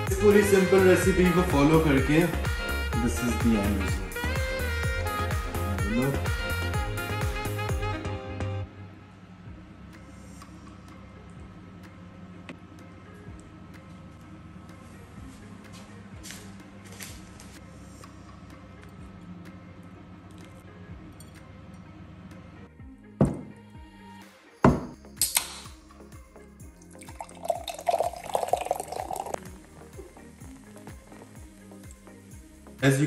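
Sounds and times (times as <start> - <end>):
background music: 0.0 - 33.0
can knocked on counter: 23.2 - 23.6, 24.7 - 25.0
cola pouring and fizzing: 26.7 - 31.9.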